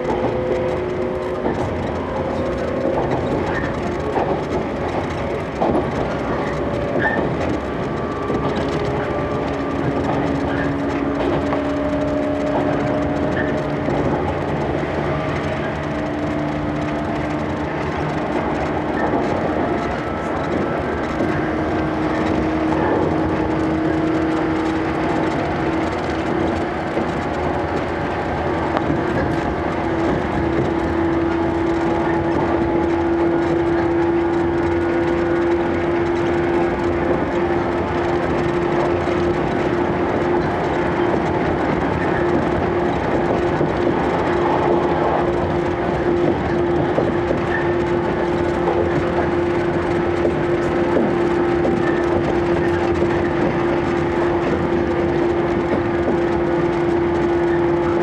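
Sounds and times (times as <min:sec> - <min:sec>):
electric train motor hum: 0:00.0 - 0:58.0
train wheels rumbling on rail: 0:00.0 - 0:58.0.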